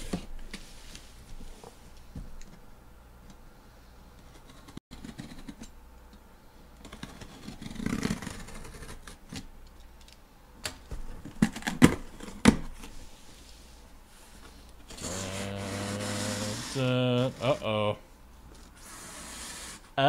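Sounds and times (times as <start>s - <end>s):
low steady hum: 0.0s - 20.0s
cardboard rubbing and scraping: 7.0s - 9.0s, 14.9s - 17.6s, 18.8s - 19.9s.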